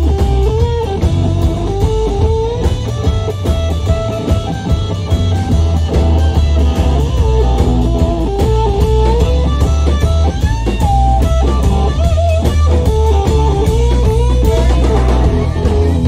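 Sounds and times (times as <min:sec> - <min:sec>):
electric guitar lead line: 0:00.0 - 0:16.0
live rock band playing: 0:00.0 - 0:16.0.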